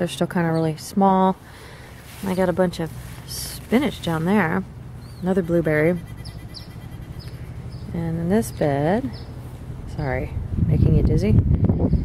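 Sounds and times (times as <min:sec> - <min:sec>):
steady low hum: 0:00.0 - 0:12.0
small birds chirping: 0:02.2 - 0:10.1.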